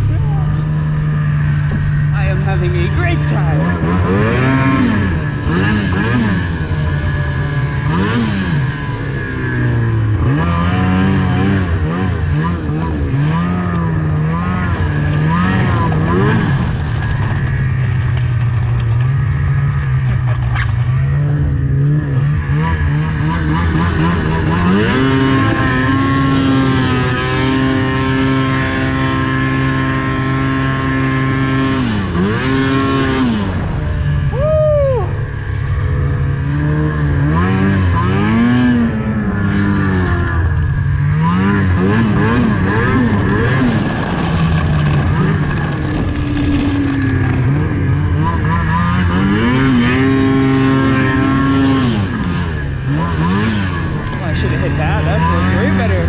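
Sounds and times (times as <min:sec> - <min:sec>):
snowmobile engine running: 0:00.0 - 0:56.0.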